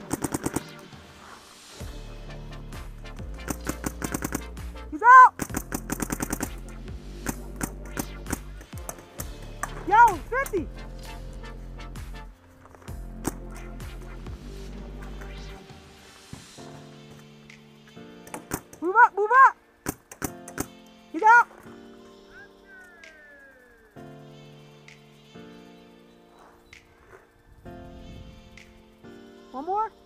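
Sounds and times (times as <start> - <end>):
paintball markers firing: 0.0 - 0.8, 3.4 - 4.6, 5.4 - 9.8, 18.3 - 18.8, 19.8 - 20.8
background music: 0.0 - 30.0
person shouting: 5.0 - 5.4.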